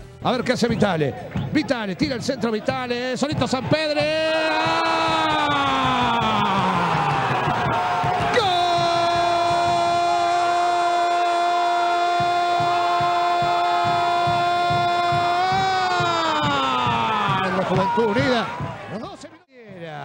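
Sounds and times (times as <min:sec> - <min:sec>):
commentator shouting goal: 0:00.3 - 0:07.3, 0:08.2 - 0:20.0
crowd noise: 0:00.3 - 0:20.0.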